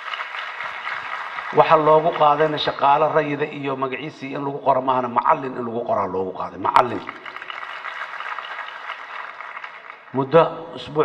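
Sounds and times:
crowd applauding: 0:00.0 - 0:03.2, 0:06.8 - 0:10.4.

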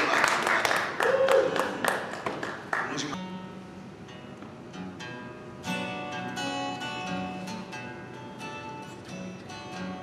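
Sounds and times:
audience applause: 0:00.0 - 0:03.2.

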